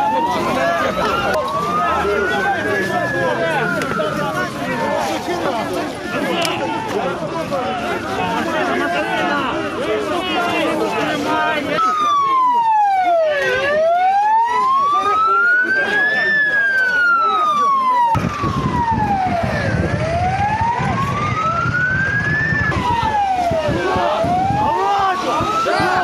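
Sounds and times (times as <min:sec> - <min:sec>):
crowd noise and voices: 0:00.0 - 0:26.0
police siren wailing: 0:00.0 - 0:26.0.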